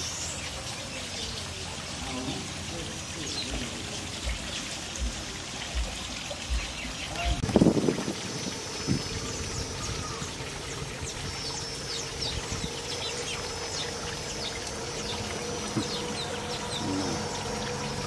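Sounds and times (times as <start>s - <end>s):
water trickling over rocks: 0.0s - 18.0s
bird chirping: 8.8s - 18.0s.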